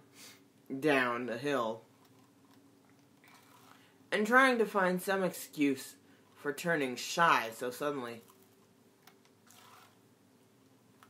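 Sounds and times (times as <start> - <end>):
faint soft hiss: 0.0 - 11.0.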